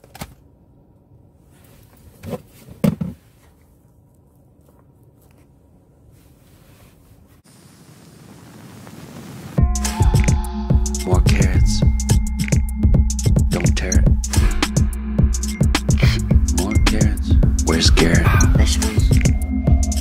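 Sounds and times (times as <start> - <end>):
hiss: 7.4 - 9.6
loud music with a beat: 9.6 - 20.0.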